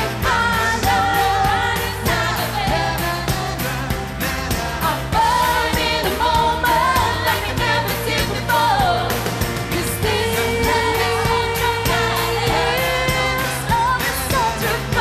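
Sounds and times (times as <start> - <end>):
woman singing lead: 0.0 - 4.1, 4.8 - 15.0
band playing steady beat: 0.0 - 15.0.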